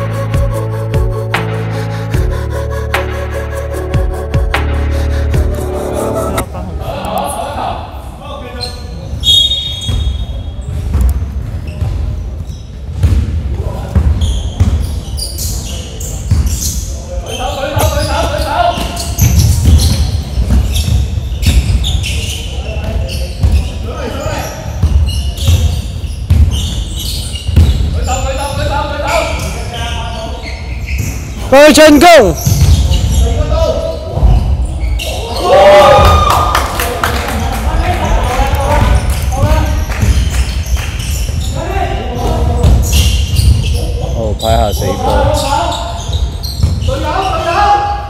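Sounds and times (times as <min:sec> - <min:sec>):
basketball bouncing on wooden floor: 0:32.4 - 0:33.0.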